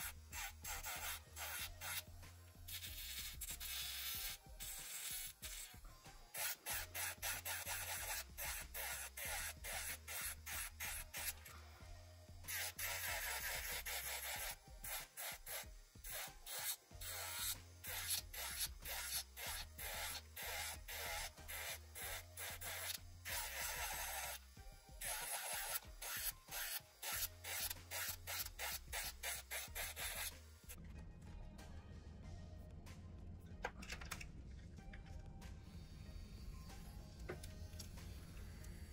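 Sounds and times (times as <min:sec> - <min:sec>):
nail drill sanding a nail: 0:00.0 - 0:11.6, 0:12.4 - 0:30.8.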